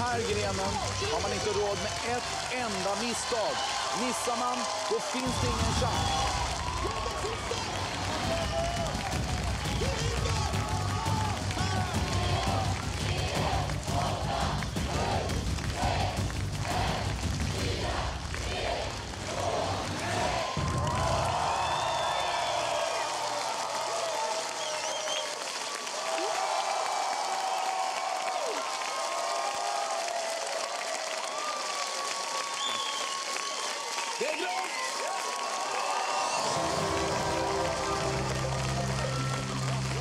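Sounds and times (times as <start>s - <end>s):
studio audience cheering and applauding: 0.0s - 40.0s
tense countdown music with bass beat: 8.9s - 18.4s.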